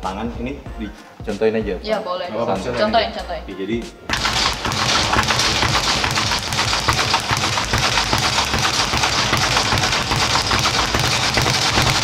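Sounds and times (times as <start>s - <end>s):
speed bag punched rapidly: 4.1s - 12.0s.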